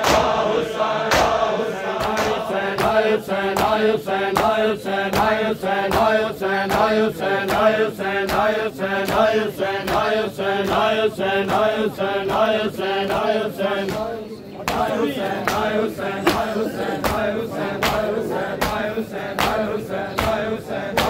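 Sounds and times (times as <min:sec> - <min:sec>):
men chanting in unison: 0:00.0 - 0:21.0
hands slapping chests: 0:01.1 - 0:03.8.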